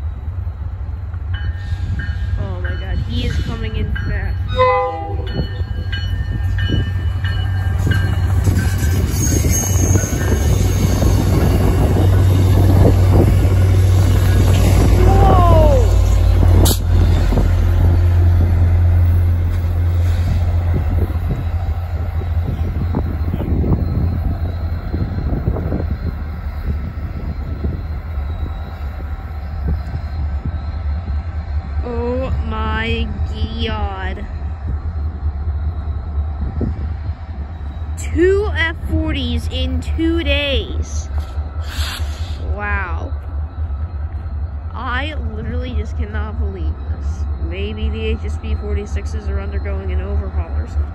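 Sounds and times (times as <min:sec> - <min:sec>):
diesel locomotive drone: 0:00.0 - 0:50.9
train rumble: 0:00.0 - 0:50.9.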